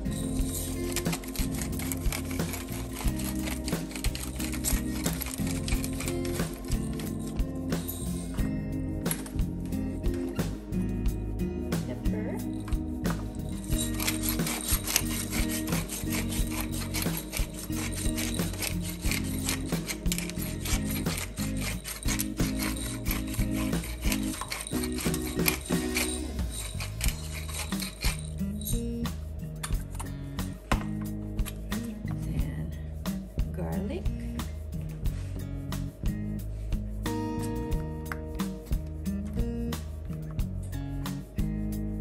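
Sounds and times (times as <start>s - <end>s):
pepper mill grinding: 0.0s - 10.4s, 12.4s - 30.2s
background music: 0.0s - 42.0s.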